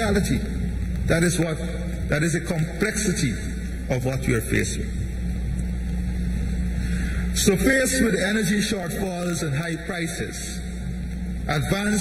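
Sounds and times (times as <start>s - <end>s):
sound system hum and hiss: 0.0s - 12.0s.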